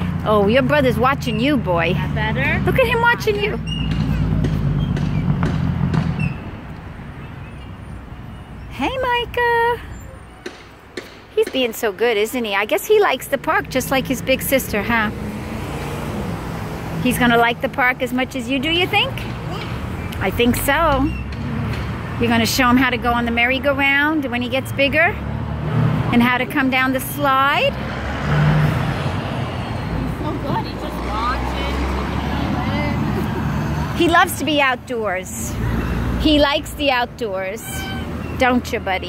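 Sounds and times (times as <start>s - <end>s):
road traffic noise: 0.0s - 39.0s
deep rumble of passing vehicle: 13.1s - 39.0s.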